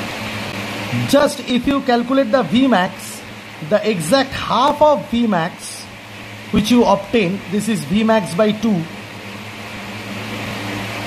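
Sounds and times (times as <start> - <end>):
fan hum with hiss: 0.0 - 11.0.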